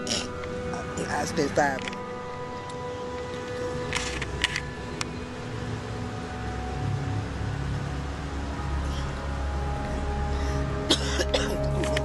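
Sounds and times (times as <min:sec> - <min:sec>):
sustained tone music: 0:00.0 - 0:12.0
man coughing: 0:10.9 - 0:11.9.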